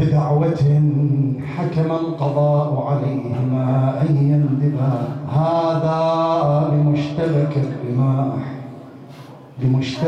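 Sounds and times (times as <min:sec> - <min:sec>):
man chanting into a microphone: 0:00.0 - 0:10.0.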